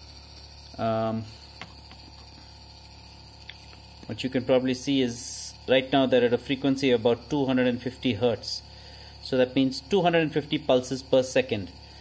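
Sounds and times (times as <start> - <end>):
small motor humming: 0.0 - 12.0.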